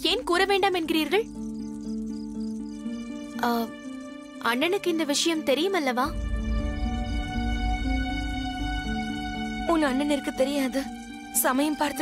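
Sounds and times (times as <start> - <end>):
rapid high chirping: 0.0 - 5.4, 6.1 - 11.9
low sustained music score: 0.0 - 12.0.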